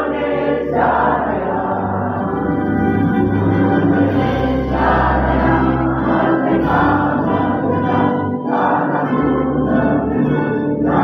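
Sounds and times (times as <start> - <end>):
crowd singing in unison: 0.0 - 11.0.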